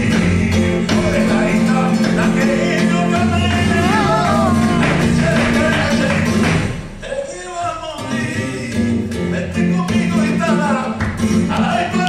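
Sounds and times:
guitar: 0.0s - 12.0s
person singing flamenco: 0.0s - 12.0s.

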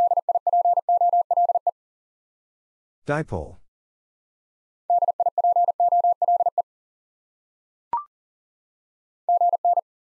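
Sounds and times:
morse code beeps: 0.0s - 1.7s, 4.9s - 6.6s, 9.3s - 9.8s.

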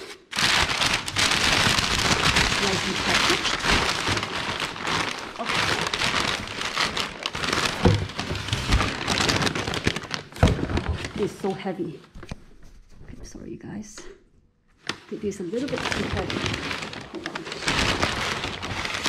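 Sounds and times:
packing paper crinkling: 0.0s - 12.7s, 14.8s - 19.0s.

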